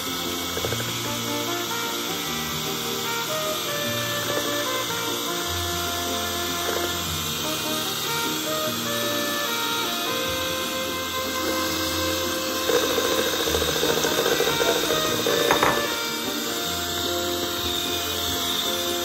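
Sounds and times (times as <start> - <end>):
background music: 0.0 - 19.0
electric hand mixer beating batter: 0.0 - 19.0.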